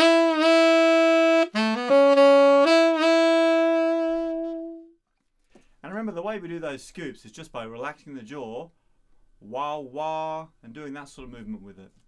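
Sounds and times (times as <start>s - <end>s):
tenor saxophone rock phrase: 0.0s - 4.9s.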